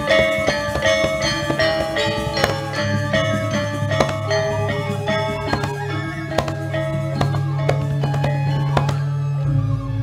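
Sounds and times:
gamelan metallophones ringing: 0.0 - 9.4.

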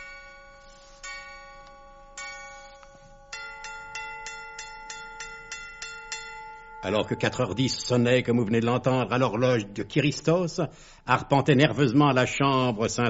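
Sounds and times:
clock chime strikes: 0.0 - 8.4.

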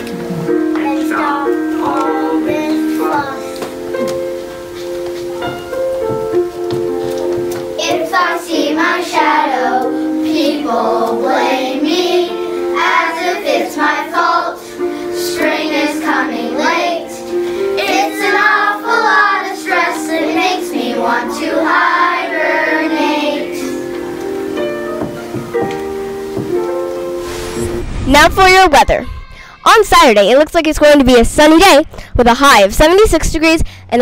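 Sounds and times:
musical accompaniment: 0.0 - 28.0
children singing: 0.7 - 3.7, 7.8 - 25.2.

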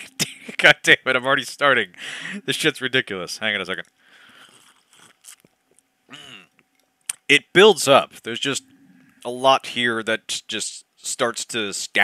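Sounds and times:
man sipping and swallowing: 4.3 - 7.2
small mouth clicks: 4.4 - 7.3.

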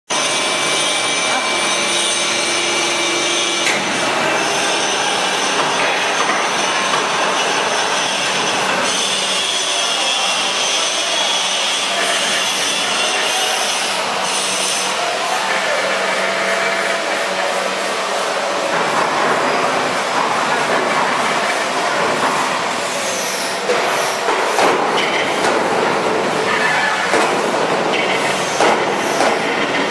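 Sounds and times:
machine hiss and whine: 0.1 - 29.9.

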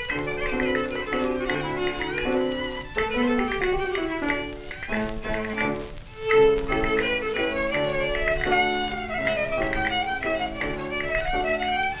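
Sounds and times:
plucked string accompaniment: 0.0 - 12.0
record surface noise clicks: 0.0 - 12.0
sliding melody line: 0.0 - 12.0.

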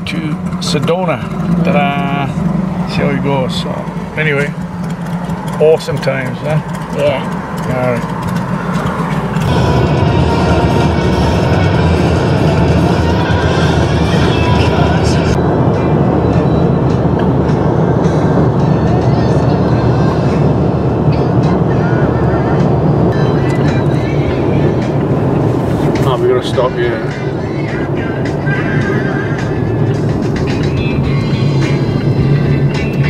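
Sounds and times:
car travelling at highway speed: 0.0 - 33.0
music with singing: 9.4 - 33.0.

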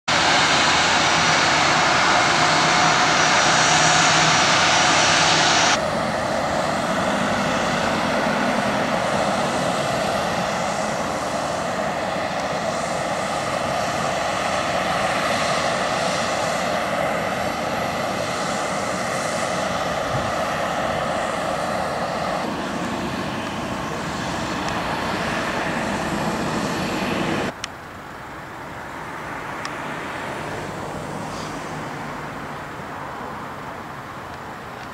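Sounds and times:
jet engines running: 0.1 - 34.9.

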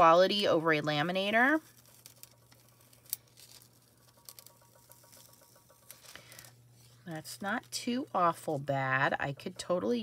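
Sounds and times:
foil sheets crinkling: 1.0 - 8.7.

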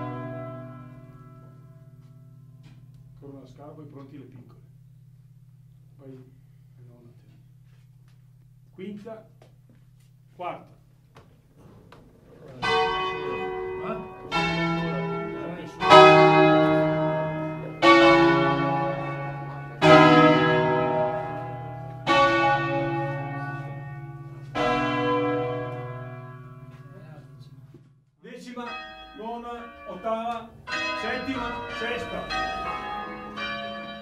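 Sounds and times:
church bells ringing: 0.0 - 5.6, 12.5 - 34.0.

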